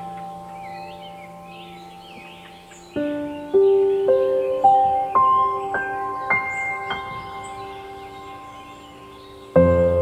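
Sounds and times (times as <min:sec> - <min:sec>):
faint high bird chirp: 0:00.0 - 0:10.0
soft piano notes ringing: 0:00.0 - 0:10.0.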